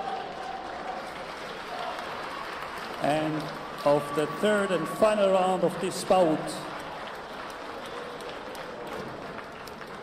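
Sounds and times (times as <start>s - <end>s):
crowd applauding: 0.0s - 10.0s.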